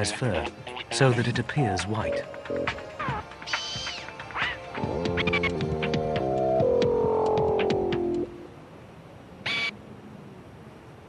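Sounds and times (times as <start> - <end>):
orchestral held chords: 1.0 - 8.6.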